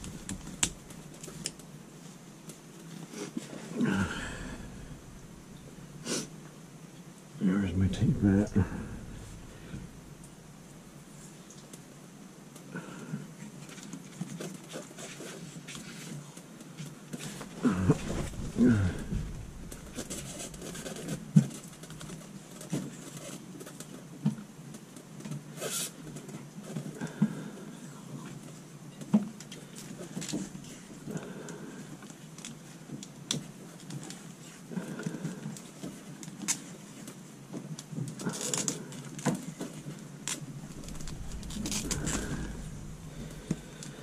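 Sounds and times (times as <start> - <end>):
soft breaths: 0.0 - 2.2, 2.9 - 6.8, 7.4 - 11.6, 15.0 - 22.2, 26.6 - 28.6, 29.5 - 32.8, 34.3 - 37.1, 38.2 - 44.0.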